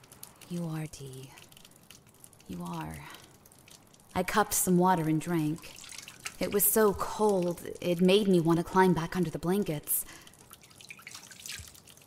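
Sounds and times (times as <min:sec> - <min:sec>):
water dripping into sink: 0:00.0 - 0:12.0.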